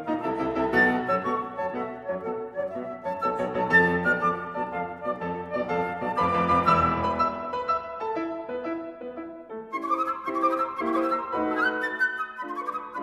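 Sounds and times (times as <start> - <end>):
flute playing classical music: 0.0 - 13.0
piano accompaniment: 0.0 - 13.0.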